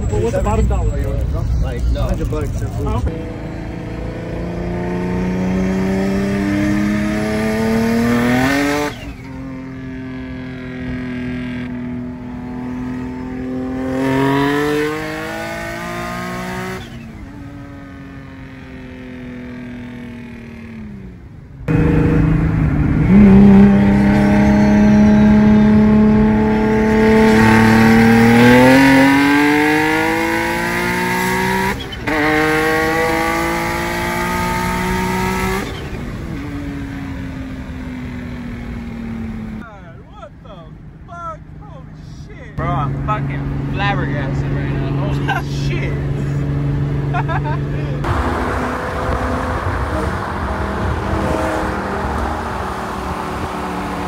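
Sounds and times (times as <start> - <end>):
car engine accelerating hard: 0.0 - 19.3, 21.6 - 39.6, 42.6 - 54.0.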